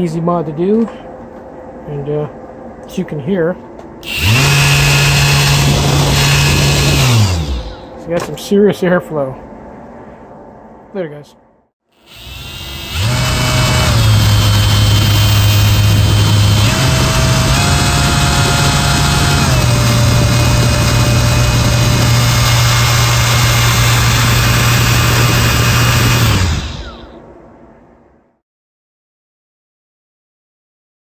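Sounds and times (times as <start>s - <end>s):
cooling fan air rushing: 0.0s - 10.9s, 12.1s - 28.0s
electric motor whining: 4.0s - 8.0s, 12.0s - 27.2s.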